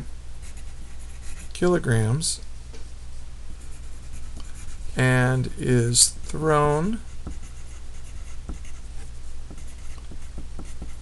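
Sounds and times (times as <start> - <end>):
pencil scratching on paper: 0.4 - 1.5, 3.6 - 5.0, 7.0 - 11.0.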